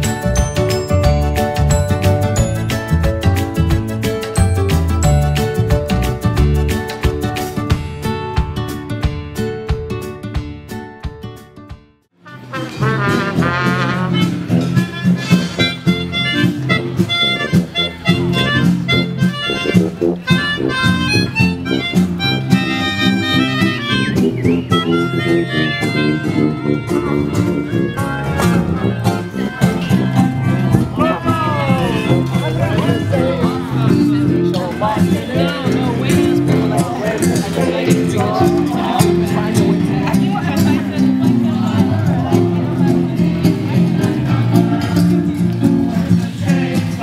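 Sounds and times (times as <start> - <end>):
sousaphone bass line: 0.0 - 8.2, 12.4 - 46.7
brass band playing: 12.2 - 39.9.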